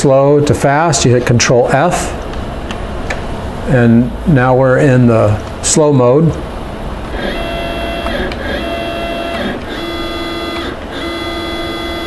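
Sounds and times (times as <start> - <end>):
stepper motors whining: 7.0 - 12.0.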